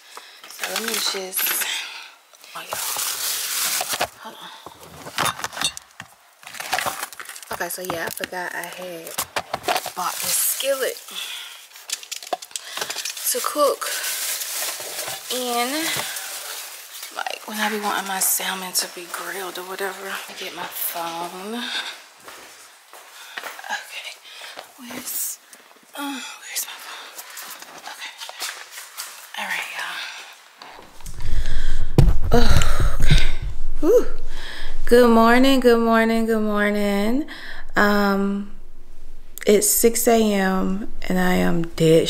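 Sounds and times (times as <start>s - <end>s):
shopping bags rustling: 0.4s - 1.7s, 2.5s - 21.8s
items knocking together: 0.5s - 1.7s, 4.8s - 10.6s, 11.8s - 13.4s.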